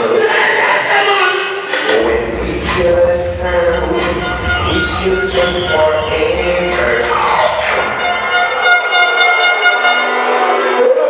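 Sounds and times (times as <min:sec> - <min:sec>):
mc voice: 0:00.0 - 0:08.0
loud dancehall music: 0:00.0 - 0:11.0
steady horn-like tone: 0:03.9 - 0:10.6.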